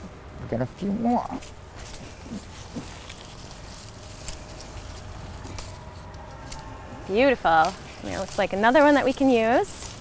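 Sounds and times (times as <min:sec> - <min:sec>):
ticks and rustles of vines: 0:01.2 - 0:10.0.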